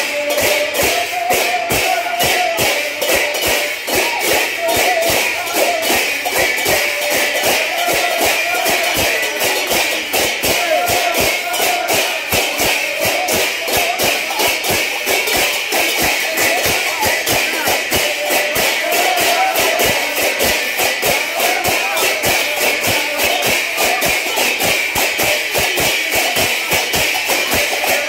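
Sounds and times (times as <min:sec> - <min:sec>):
hand cymbals clashing: 0:00.0 - 0:28.0.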